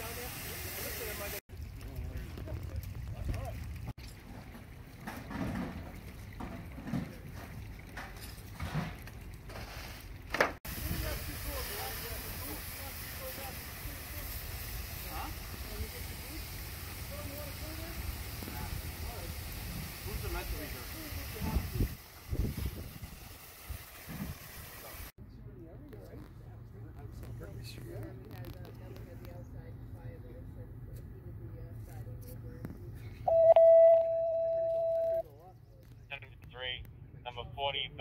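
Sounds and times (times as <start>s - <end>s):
fire hose spraying water: 0.0s - 5.0s, 8.8s - 25.1s.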